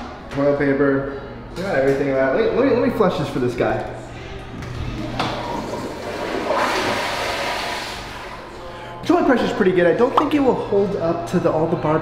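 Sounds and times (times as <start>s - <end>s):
toilet flushing: 4.9s - 8.6s.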